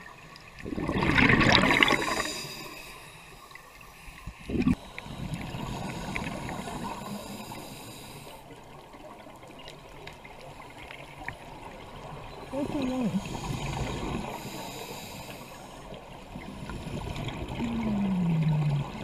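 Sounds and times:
scuba exhaled bubbles: 0:00.4 - 0:02.9, 0:04.3 - 0:07.4, 0:16.3 - 0:19.0.

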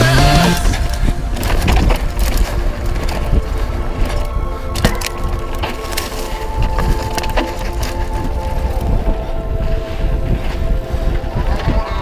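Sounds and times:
bike clattering over bumps: 0:00.0 - 0:08.4
tyres crunching over dirt: 0:00.0 - 0:12.0
wind rumble on microphone: 0:00.0 - 0:12.0.

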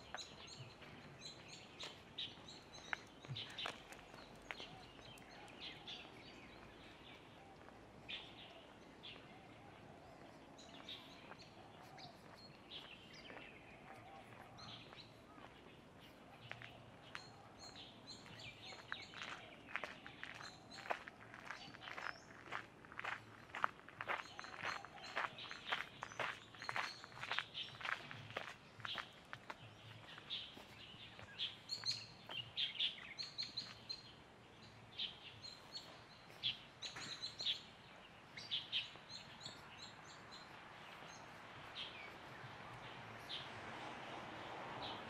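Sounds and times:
birds chirping: 0:00.0 - 0:45.0
footsteps on a path: 0:00.0 - 0:45.0
outdoor background noise: 0:00.0 - 0:45.0.

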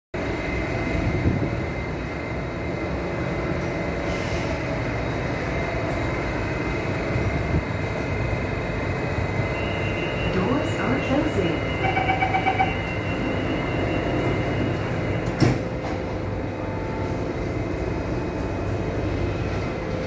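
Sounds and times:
train equipment hum with whine: 0:00.2 - 0:20.0
high warning tone: 0:09.0 - 0:15.4.

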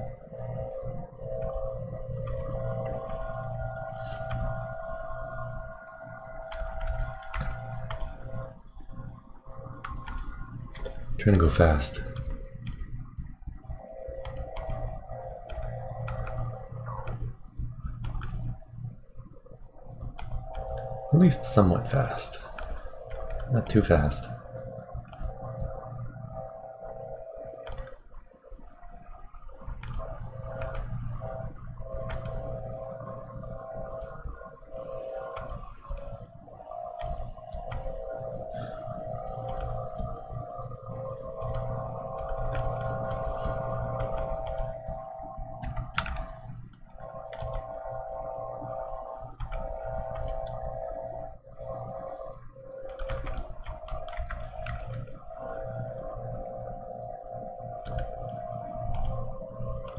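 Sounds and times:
droning hum with held tones: 0:00.0 - 0:59.9.

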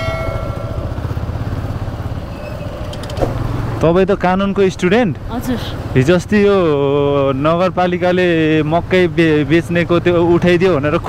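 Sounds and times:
motorcycle engine running: 0:00.0 - 0:11.0
road and wind noise: 0:00.0 - 0:11.0.

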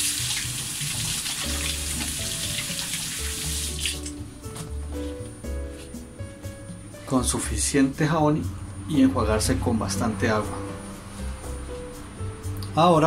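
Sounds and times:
hands washing: 0:00.0 - 0:04.2
tap water running into sink: 0:00.0 - 0:04.2.

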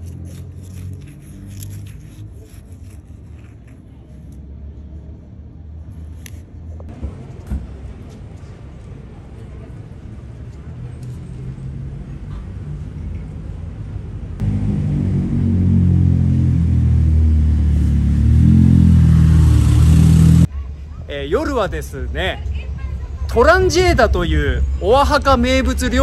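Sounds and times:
low traffic rumble: 0:00.0 - 0:26.0
motor vehicle engine revving: 0:14.4 - 0:20.5.

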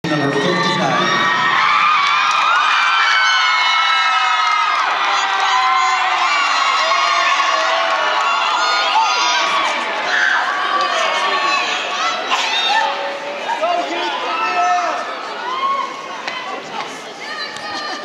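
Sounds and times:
crowd cheering and screaming: 0:00.1 - 0:16.6.

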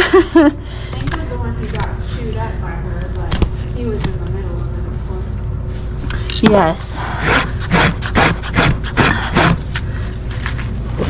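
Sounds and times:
hoof rasp filing: 0:07.1 - 0:09.9.

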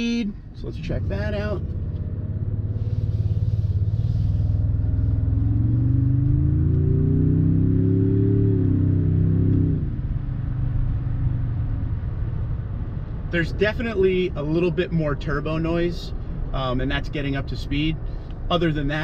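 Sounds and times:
truck engine accelerating: 0:00.6 - 0:14.1.

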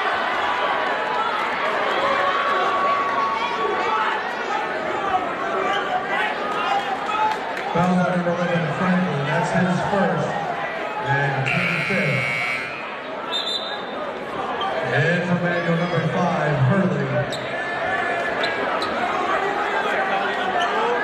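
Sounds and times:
crowd chatter: 0:00.0 - 0:21.0
referee's whistle: 0:11.4 - 0:13.9
scorer's table buzzer: 0:11.5 - 0:12.9.

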